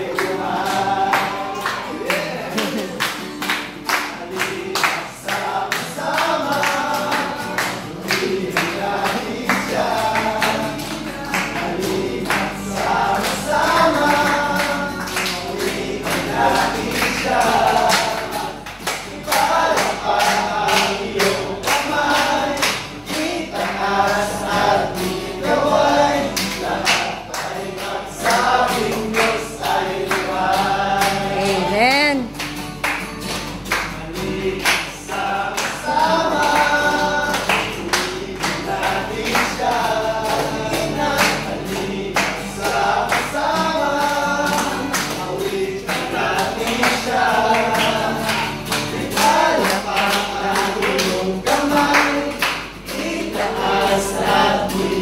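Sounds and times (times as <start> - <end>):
men singing together: 0.0 - 32.3, 33.6 - 55.0
hand claps: 0.0 - 55.0
strummed acoustic guitar: 0.0 - 55.0.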